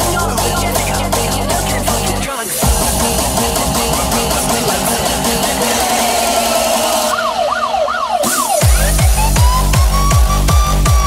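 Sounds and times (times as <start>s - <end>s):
happy hardcore dance music: 0.0s - 11.0s
siren-like synth wailing: 2.6s - 10.6s.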